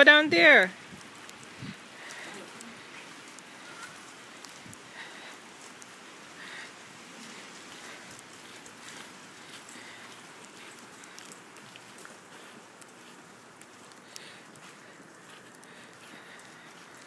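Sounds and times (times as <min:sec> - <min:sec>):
faint steady hiss: 0:00.0 - 0:17.0
footsteps on snow: 0:00.8 - 0:17.0.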